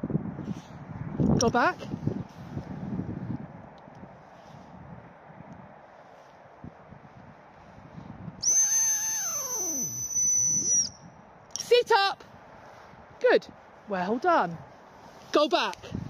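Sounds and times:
high whistle blast: 8.4s - 11.0s.

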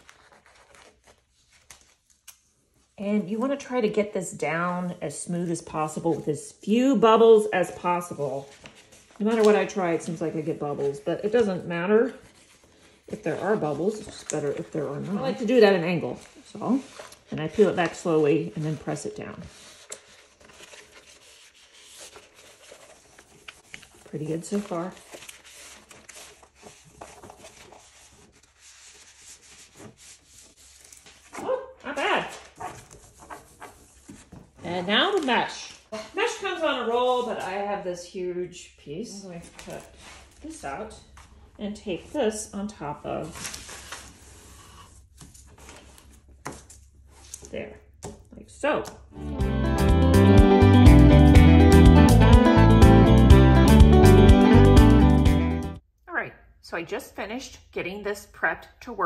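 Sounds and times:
hand rubbing adhesive paper: 12.2s - 31.4s.

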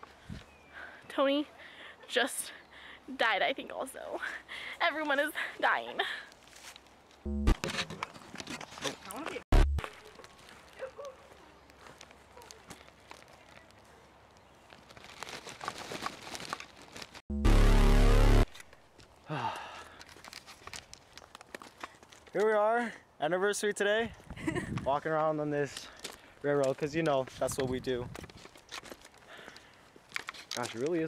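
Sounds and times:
rustling dry leaves: 9.9s - 17.2s, 19.9s - 22.3s
harsh distorted noise burst: 17.3s - 18.5s.

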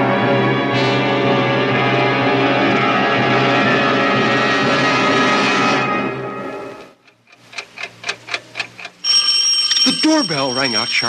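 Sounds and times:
orchestral music: 0.0s - 6.9s
clock ticking: 6.8s - 11.0s
doorbell ringing: 9.0s - 11.0s.

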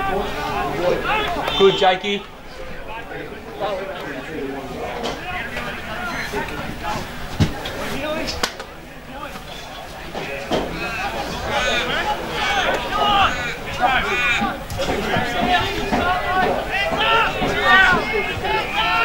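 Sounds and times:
players and spectators shouting: 0.0s - 19.0s.

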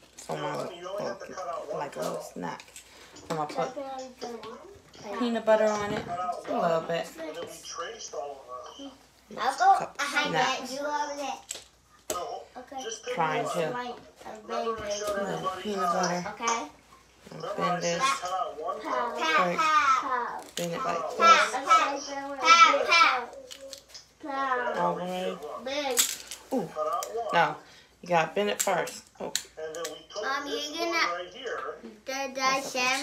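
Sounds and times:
people talking: 0.3s - 2.6s, 17.3s - 20.0s, 20.6s - 23.5s, 24.3s - 25.9s.

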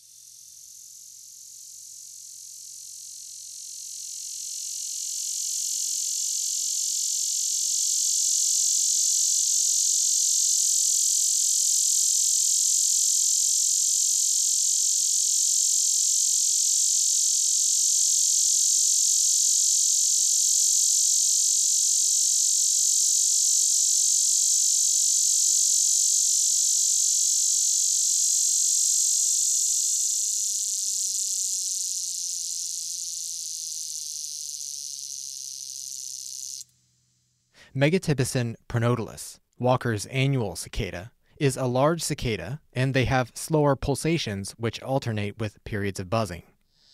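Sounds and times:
cicada high-pitched buzz: 0.0s - 37.5s.

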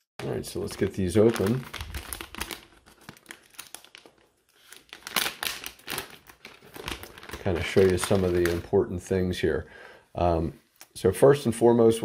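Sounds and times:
plastic bag crinkling: 0.2s - 8.8s.

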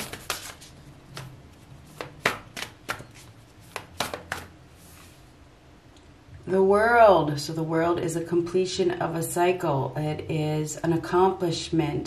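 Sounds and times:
cards being shuffled: 0.0s - 4.6s.

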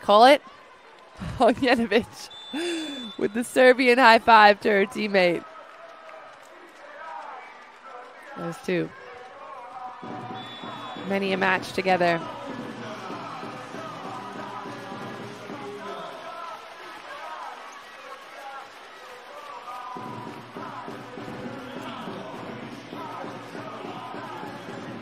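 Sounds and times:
crowd noise: 0.0s - 25.0s.

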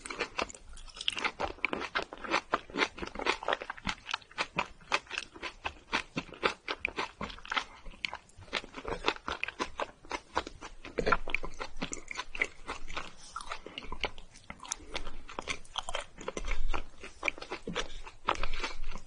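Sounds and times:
chewing with mouth clicks: 0.0s - 19.0s.

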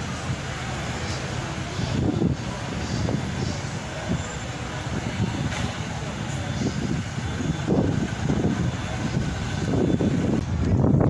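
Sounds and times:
city ambience rumble: 0.0s - 11.0s.

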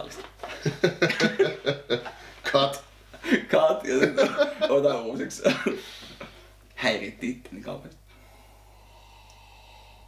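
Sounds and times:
low electrical hum: 0.0s - 10.0s
people breathing and sipping: 5.8s - 6.6s, 8.1s - 10.0s.

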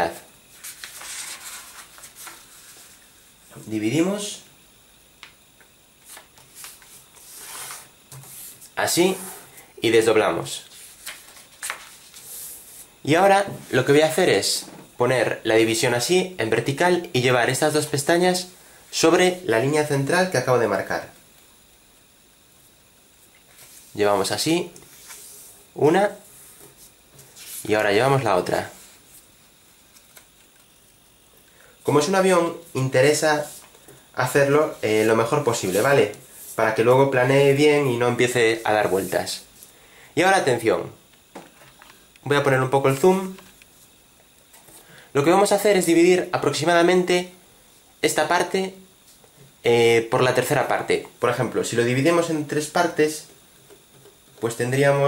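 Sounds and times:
paper rustling and crinkling: 0.5s - 3.0s, 10.7s - 12.6s.

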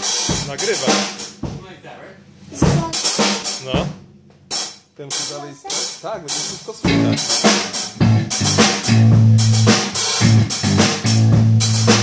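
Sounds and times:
drum kit played with sticks: 0.0s - 1.8s, 2.4s - 12.0s.

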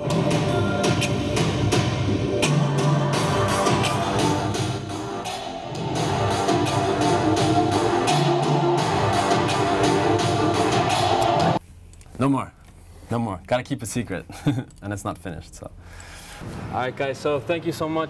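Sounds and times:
music track with steady beat: 0.0s - 11.6s.

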